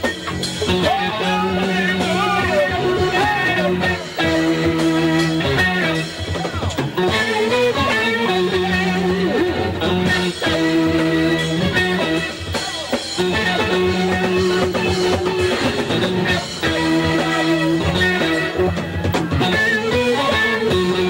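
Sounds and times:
bass and drums: 0.0 - 21.0
electric guitar bending notes: 0.0 - 21.0.

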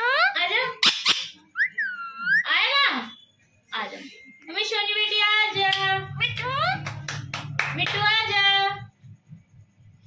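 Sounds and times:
parakeet squawking and whistling: 0.7 - 2.6.

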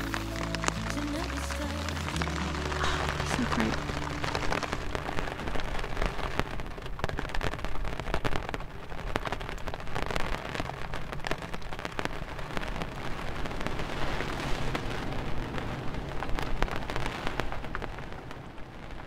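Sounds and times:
rain on plastic umbrella: 0.0 - 19.0.

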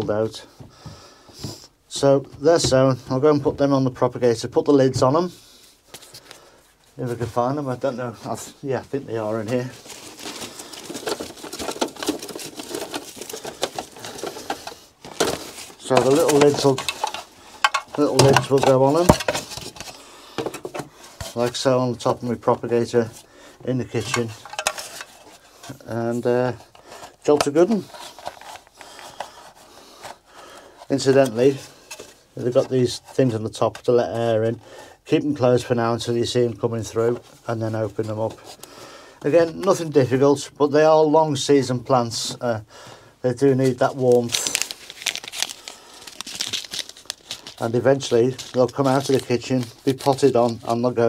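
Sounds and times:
packet crinkling: 9.2 - 21.6, 26.4 - 32.1, 43.7 - 51.0
plastic lid clicks and rustling: 10.3 - 21.4, 24.0 - 25.8.

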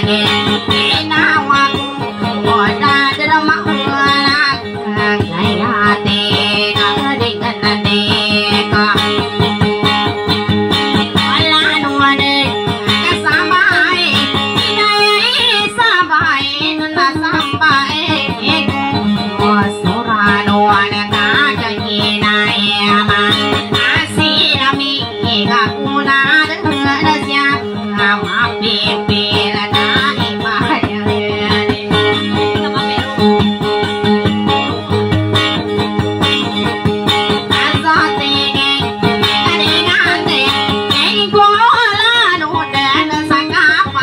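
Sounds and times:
acoustic guitar rhythm: 0.0 - 44.0.

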